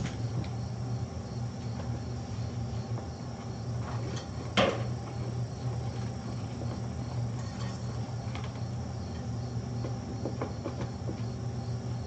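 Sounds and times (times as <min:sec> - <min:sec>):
room machinery hum: 0:00.0 - 0:12.0.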